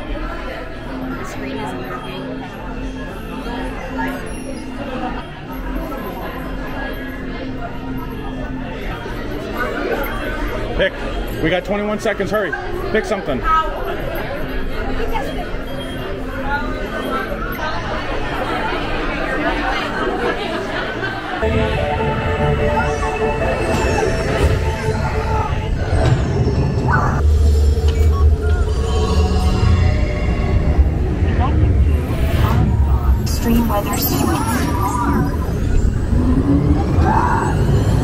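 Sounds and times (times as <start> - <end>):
background hum of voices: 0.0 - 26.1
people talking: 31.2 - 35.9.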